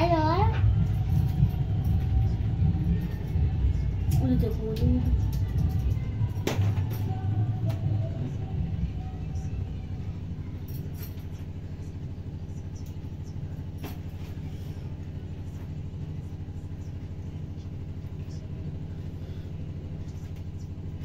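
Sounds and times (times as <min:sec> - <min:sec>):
low rumbling motor hum: 0:00.0 - 0:21.0.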